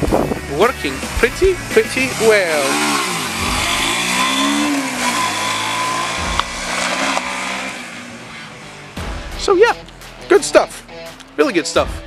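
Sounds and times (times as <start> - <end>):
motorcycle passing and accelerating: 0.0 - 11.4.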